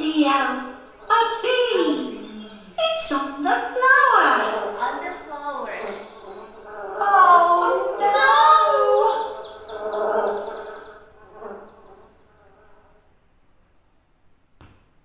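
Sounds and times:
high voice gliding in pitch: 0.0s - 11.6s.

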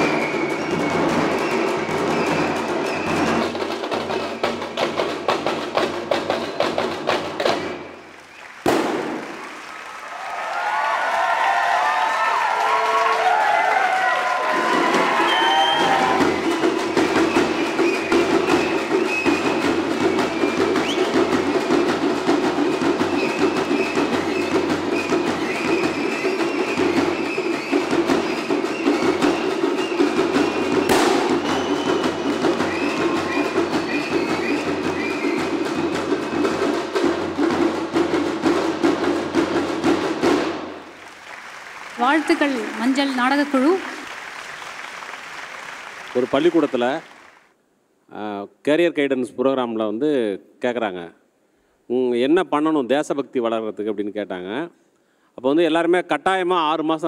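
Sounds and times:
folk drums fast beat: 0.0s - 9.6s, 10.6s - 41.0s, 42.0s - 47.3s.

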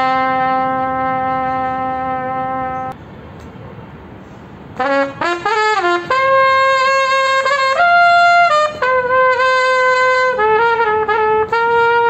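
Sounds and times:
trumpet holding long note: 0.0s - 3.0s, 4.8s - 12.0s.

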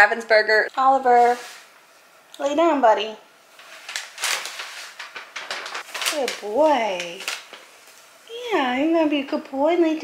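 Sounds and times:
rustling and scuffing: 1.1s - 2.1s.

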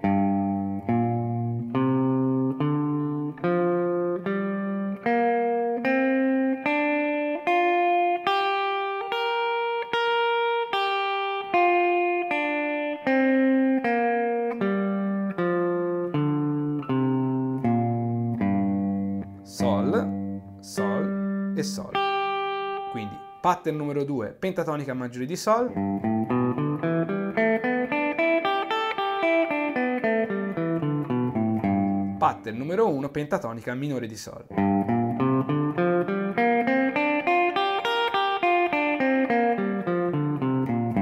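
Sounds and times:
electric guitar playing a scale: 0.0s - 24.2s, 25.0s - 41.0s.

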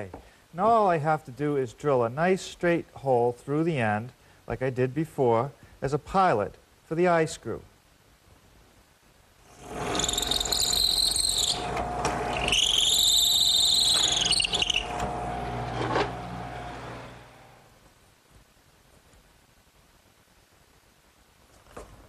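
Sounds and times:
drill bit screeching through metal: 9.5s - 15.4s
power drill motor hum: 9.5s - 17.7s.

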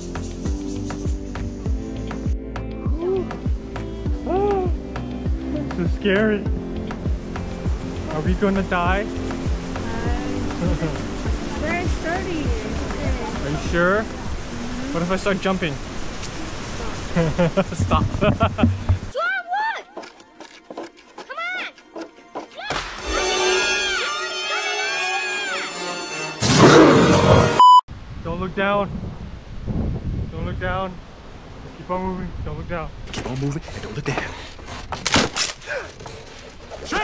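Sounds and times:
high-pitched voice crying out: 4.2s - 4.8s, 22.6s - 25.8s
wooden planks cracking: 34.9s - 37.0s.

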